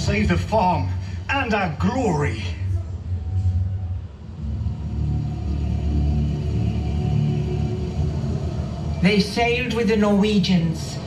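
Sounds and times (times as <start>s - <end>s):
low droning tones: 0.0s - 11.0s.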